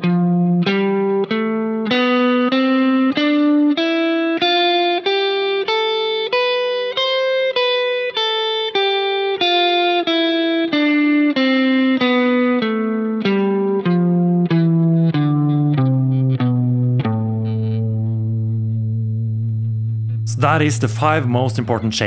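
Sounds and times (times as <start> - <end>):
electric guitar playing a scale: 0.0 - 22.0.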